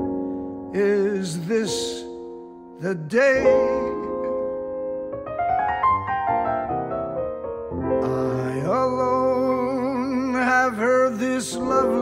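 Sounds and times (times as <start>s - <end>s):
sustained piano accompaniment: 0.0s - 12.0s
man singing jazz ballad: 0.7s - 4.5s, 8.0s - 12.0s.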